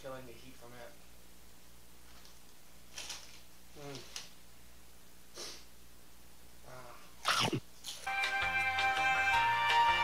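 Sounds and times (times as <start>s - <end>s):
background music with steady beat: 8.0s - 10.0s.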